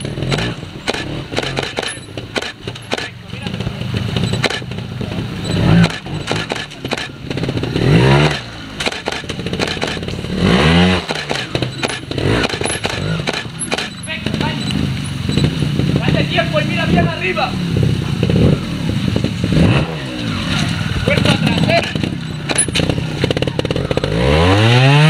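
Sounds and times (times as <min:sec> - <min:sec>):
motorcycle engine revving: 0:00.0 - 0:25.0.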